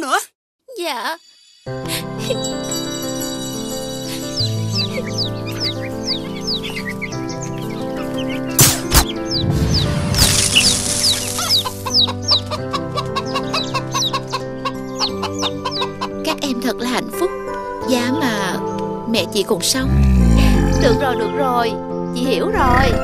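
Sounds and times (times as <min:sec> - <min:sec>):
light background music: 0:00.7 - 0:23.0
chickens clucking: 0:04.8 - 0:09.9, 0:10.8 - 0:16.4
sharp knock: 0:08.6 - 0:09.2
cartoon chicks peeping: 0:09.2 - 0:16.1.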